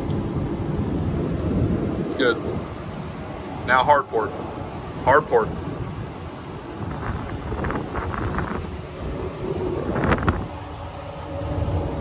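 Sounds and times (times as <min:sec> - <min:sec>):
outboard motors running: 0:00.0 - 0:12.0
wind on microphone: 0:00.0 - 0:12.0.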